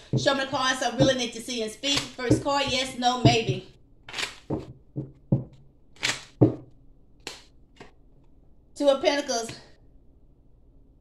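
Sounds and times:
cards shuffling swishes: 4.1 - 6.6, 7.2 - 8.0.

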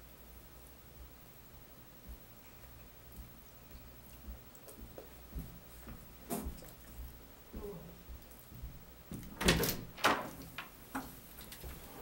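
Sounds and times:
door opening and shutting: 9.3 - 10.5.

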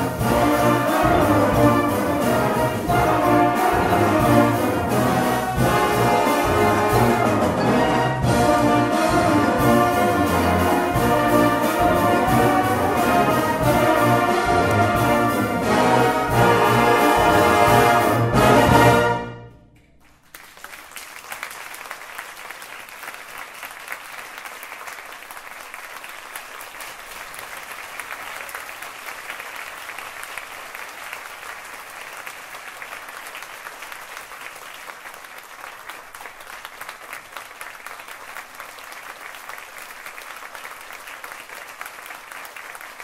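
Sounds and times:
audience applauding: 20.0 - 43.0.

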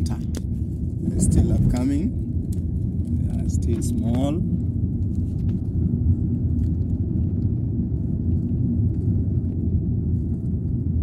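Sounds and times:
car interior rumble: 0.0 - 11.0.

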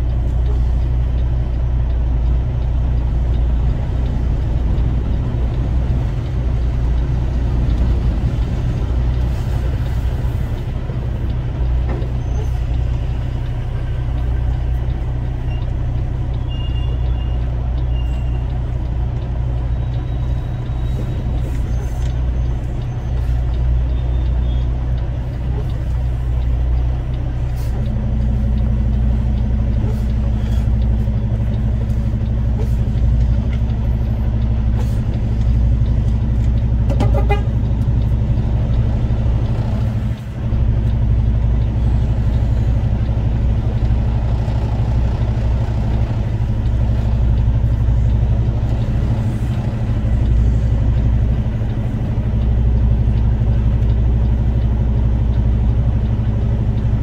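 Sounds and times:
road noise: 0.0 - 57.0
vehicle engine rumble: 0.0 - 57.0.

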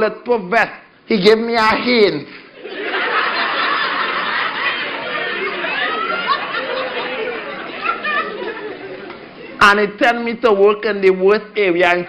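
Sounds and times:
audience laughing and chattering: 2.4 - 9.6.

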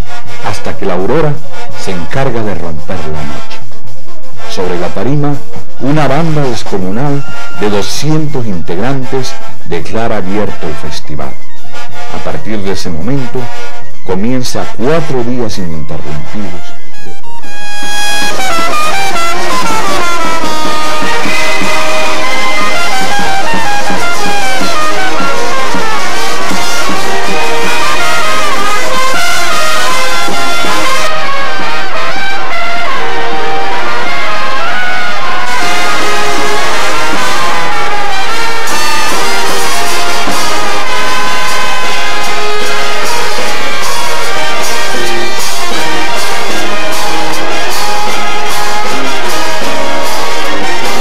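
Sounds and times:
brass and clarinet wind band: 0.0 - 51.0.

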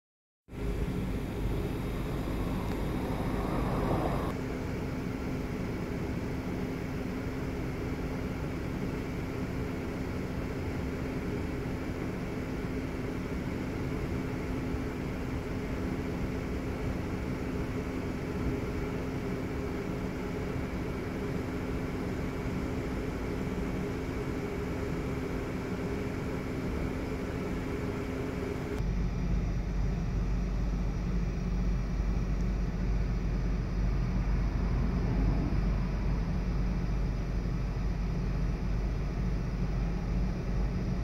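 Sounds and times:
car engine idling: 0.6 - 4.3.

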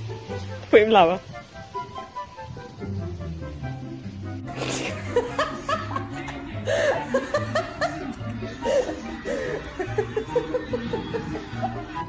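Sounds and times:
background music with bass line: 0.0 - 12.0
person chuckling: 4.5 - 12.0.

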